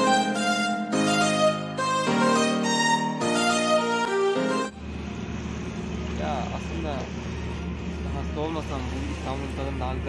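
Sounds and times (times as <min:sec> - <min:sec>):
violin music: 0:00.0 - 0:04.8
traffic rumble: 0:04.7 - 0:10.0.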